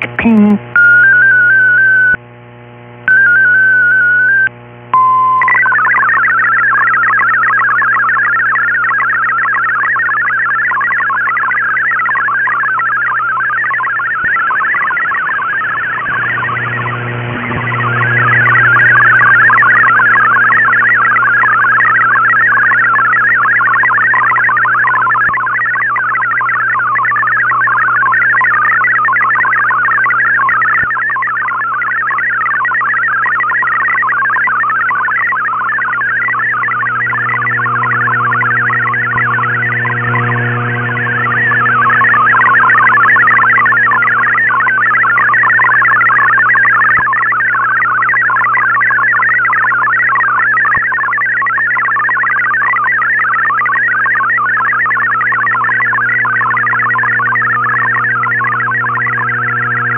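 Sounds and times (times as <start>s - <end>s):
brief steady tone: 0.0s - 2.2s, 3.0s - 59.9s
digital data signal warble: 3.1s - 59.9s
wavering tone bursts: 5.4s - 59.9s
steady low hum: 14.5s - 28.4s, 35.6s - 46.7s, 55.8s - 59.9s.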